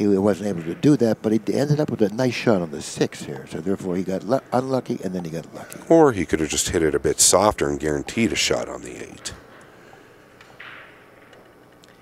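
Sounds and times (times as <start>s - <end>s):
faint small clicks: 11.3s - 12.0s.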